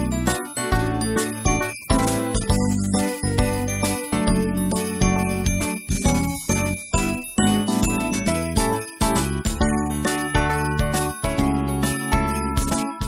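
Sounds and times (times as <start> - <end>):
melody of struck notes: 0.0 - 13.0
steady bass line: 0.0 - 13.0.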